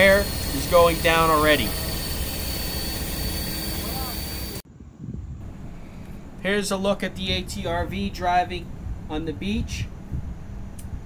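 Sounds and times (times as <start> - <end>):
air hissing from tires: 0.0 - 4.6
low rumble: 0.0 - 11.0.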